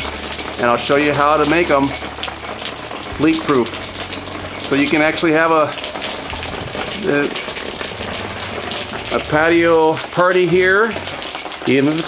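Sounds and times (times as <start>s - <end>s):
water falling on roof: 0.0s - 12.0s.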